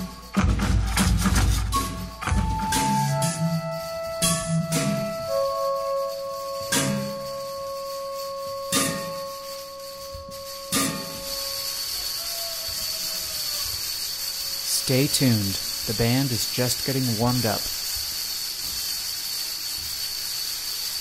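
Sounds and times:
robotic instruments struck notes: 0.0 - 11.9
steady high tone: 1.7 - 17.6
hiss: 2.8 - 21.0.

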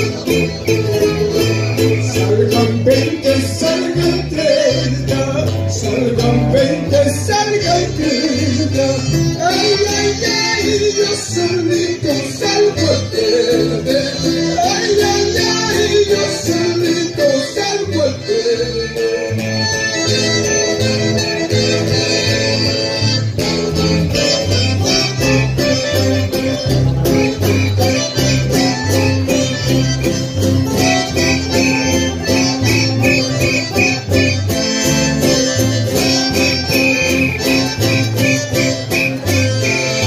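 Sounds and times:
accordion: 0.0 - 40.0
guitar: 0.0 - 40.0.

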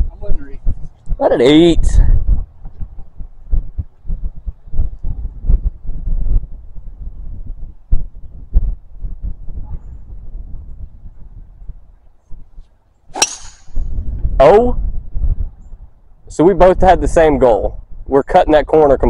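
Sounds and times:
wind rumbling on microphone: 0.0 - 19.0
golf club striking ball: 13.1 - 14.0.

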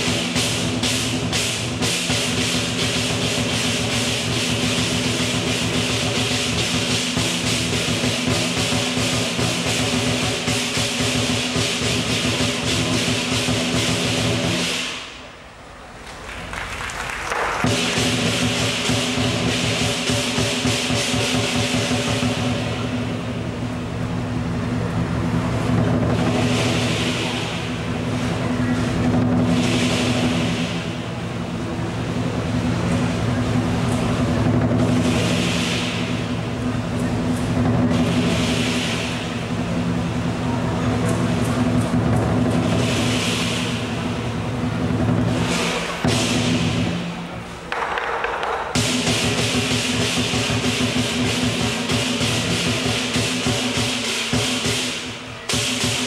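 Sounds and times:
cymbal crashes: 0.0 - 15.6, 17.6 - 56.0
lion dance drum: 0.0 - 56.0.

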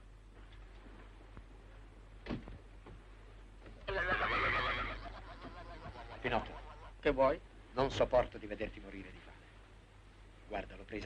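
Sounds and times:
sea lion calling: 3.9 - 7.0.

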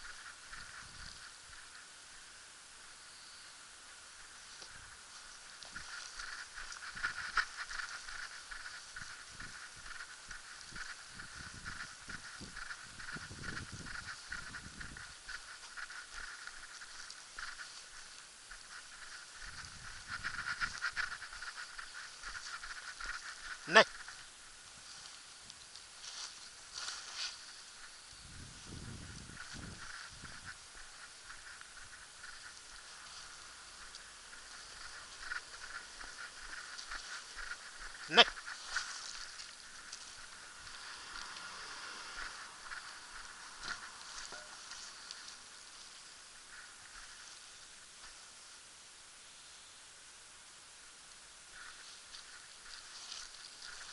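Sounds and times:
faint high whine: 0.0 - 53.9
walking footsteps: 4.2 - 48.2, 51.6 - 53.9.

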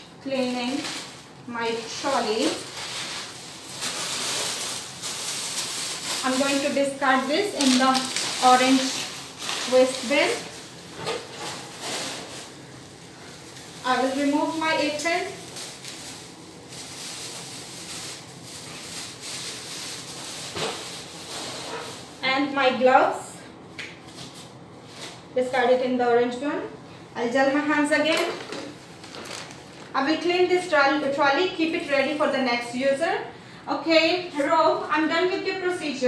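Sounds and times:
plastic apron rustling: 0.2 - 22.6, 24.0 - 25.7, 27.2 - 32.7.

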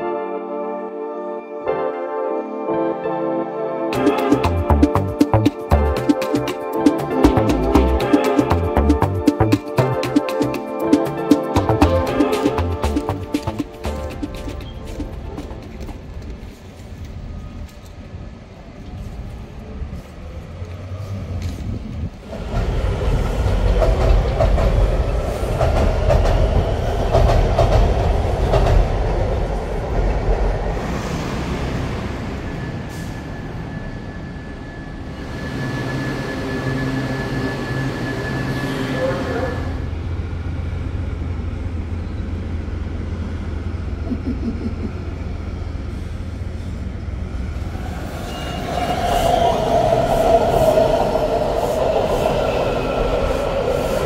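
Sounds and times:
subway train rumbling: 0.0 - 54.0
train brakes squealing: 30.8 - 39.9, 47.6 - 54.0.

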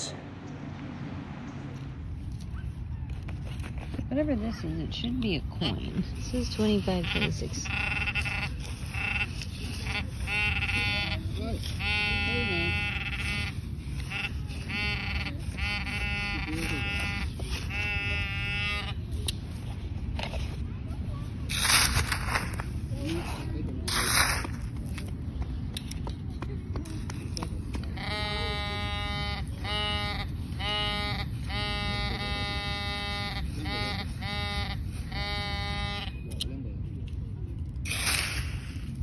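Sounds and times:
metal detector pinpointer buzzing: 4.9 - 20.4, 21.5 - 22.8, 27.3 - 36.5, 37.8 - 39.0
scoop scraping gravelly sand: 5.9 - 14.7, 21.3 - 25.1, 37.9 - 39.0.

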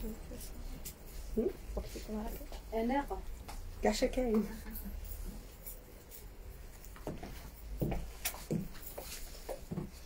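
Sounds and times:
woman's voice: 0.0 - 5.0.

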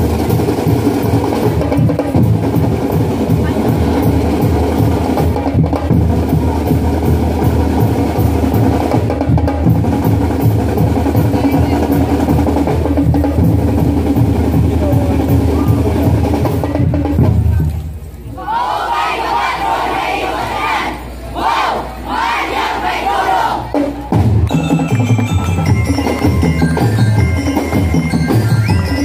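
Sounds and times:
snare and bass drums beat: 0.0 - 17.8, 23.6 - 29.0.

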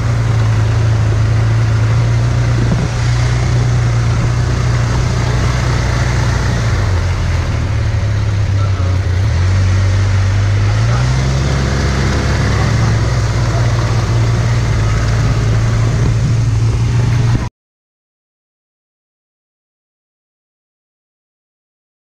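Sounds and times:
rushing noise: 0.0 - 17.5
utility vehicle engine running: 0.0 - 17.5.

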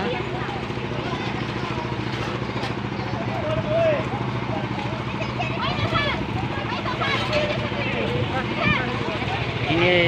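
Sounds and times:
people talking: 0.0 - 10.0
truck engine idling: 0.0 - 10.0.

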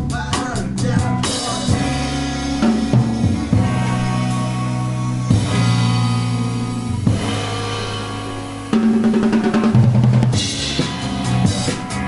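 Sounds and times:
band playing live: 0.0 - 12.0
cymbals washing: 1.1 - 12.0.

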